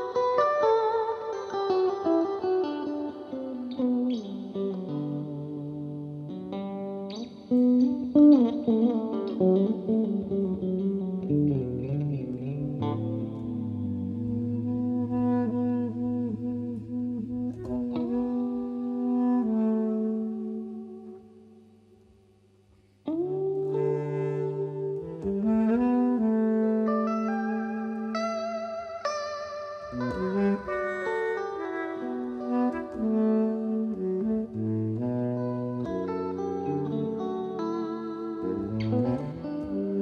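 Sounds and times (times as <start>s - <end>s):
baritone saxophone with vibrato: 0.0s - 21.6s, 23.1s - 40.0s
electric guitar: 0.0s - 21.7s, 22.7s - 40.0s.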